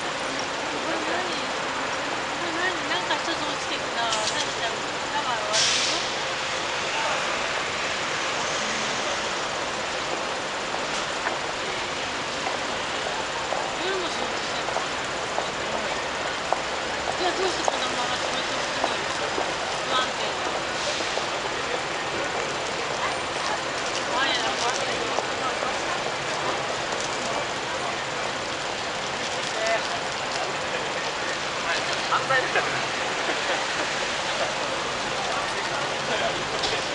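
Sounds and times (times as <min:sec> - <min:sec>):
crowd noise: 0:00.0 - 0:36.9
traffic noise: 0:00.0 - 0:36.9
voices of passers-by: 0:00.0 - 0:36.9
short hiss: 0:05.6 - 0:06.2.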